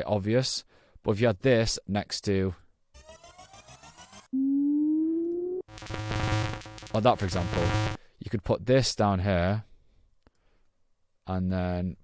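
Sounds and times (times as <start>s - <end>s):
pure tone sliding upward: 3.0s - 6.4s.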